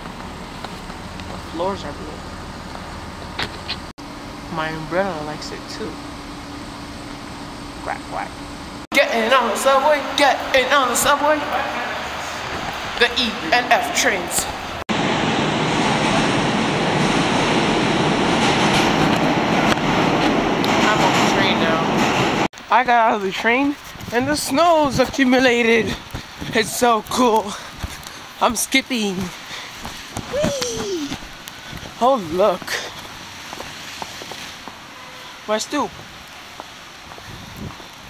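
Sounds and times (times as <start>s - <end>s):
subway train wheels on rails: 4.2s - 22.5s
footsteps crunching in snow: 23.7s - 34.9s, 36.0s - 38.0s.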